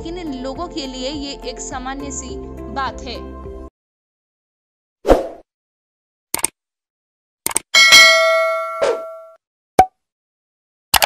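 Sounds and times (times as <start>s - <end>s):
sharp clicks: 6.3s - 6.6s, 7.4s - 7.7s
bright bell-like ding: 7.8s - 9.4s.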